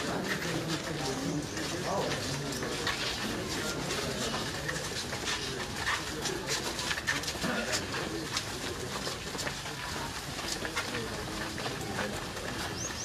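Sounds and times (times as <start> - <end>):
faint voices: 0.0 - 13.0
footsteps on dirt and grit: 0.0 - 13.0.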